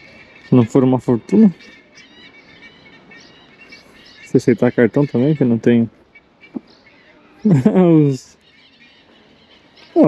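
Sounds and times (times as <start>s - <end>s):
distant birds chirping: 0.0s - 10.0s
low outdoor background: 0.0s - 10.0s.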